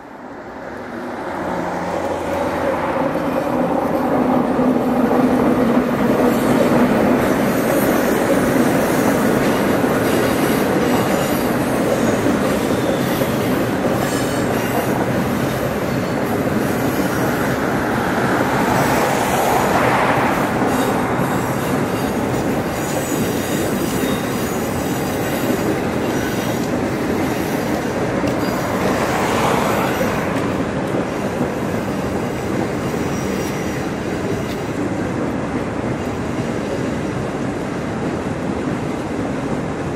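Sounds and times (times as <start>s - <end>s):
train carriages rumbling: 0.8s - 39.9s.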